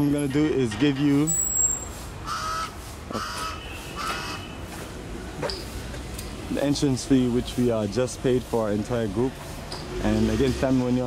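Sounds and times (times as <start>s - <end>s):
bird calling: 1.3s - 4.7s.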